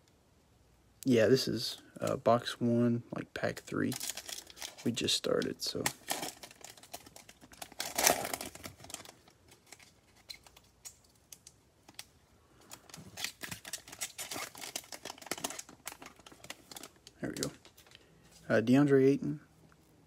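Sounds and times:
foil wrapper crinkling: 3.7s - 18.1s.

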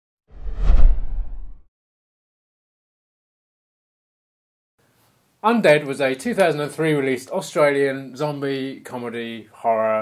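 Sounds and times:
whoosh: 0.3s - 1.7s.

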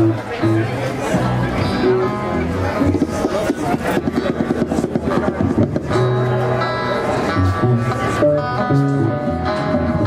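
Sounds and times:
acoustic guitars strummed: 0.0s - 10.0s
live band playing: 0.0s - 10.0s.

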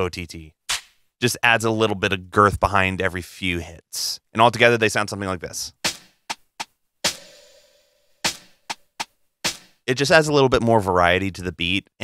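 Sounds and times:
electronic snare hits: 7.1s - 7.6s, 8.2s - 9.8s.

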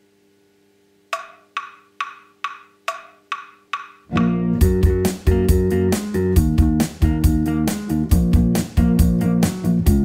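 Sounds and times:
wood block count-in clicks: 1.1s - 4.1s.

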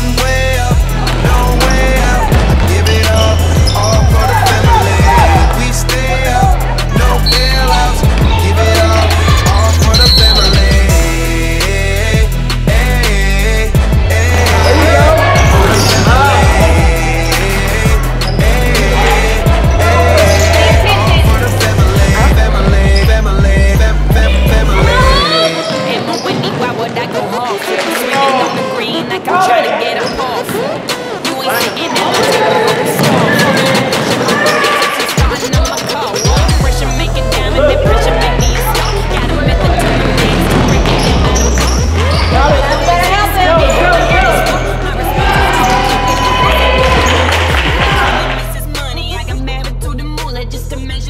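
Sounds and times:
music with heavy bass beat: 0.0s - 25.2s, 32.2s - 51.0s
echoing voices in a hall: 0.0s - 51.0s
basketball bouncing on hardwood: 39.1s - 42.4s.

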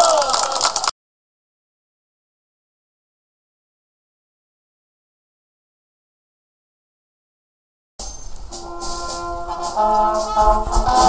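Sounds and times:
wind band playing: 8.5s - 11.0s.

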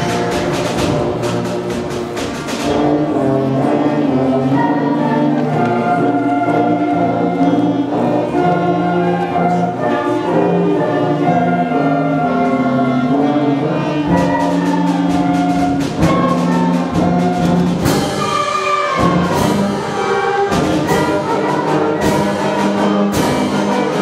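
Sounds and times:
rapid percussion strikes: 0.0s - 9.6s, 13.8s - 24.0s
concert band wind chords: 0.0s - 24.0s.

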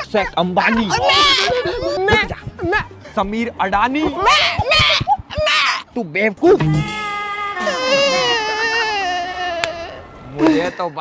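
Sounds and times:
man talking: 0.0s - 5.0s
man wailing in mock crying: 0.6s - 2.5s, 4.2s - 5.8s, 6.9s - 10.7s.

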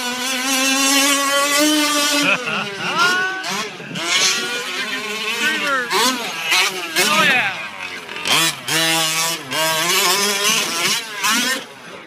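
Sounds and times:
small two-stroke engine revving: 0.0s - 12.0s.

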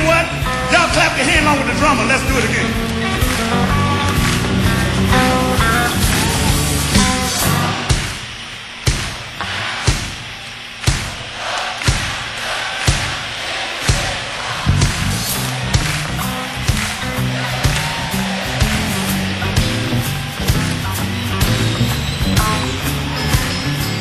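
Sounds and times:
electric blues band playing: 0.0s - 7.9s, 14.7s - 24.0s
sharp drum hits: 7.9s - 9.3s, 9.9s - 12.3s, 12.9s - 13.2s.

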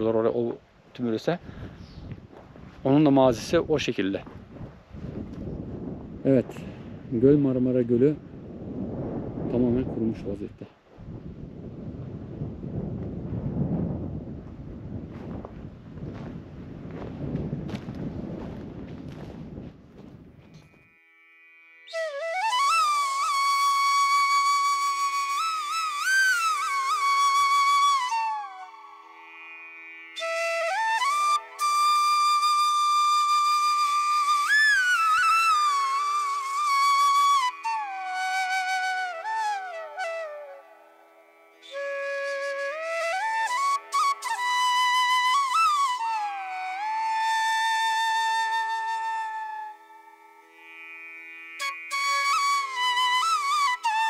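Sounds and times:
slow solo flute melody: 20.5s - 54.0s.

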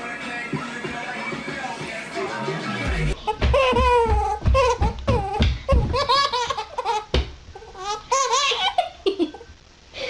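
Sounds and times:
baby laughing: 3.2s - 9.5s.

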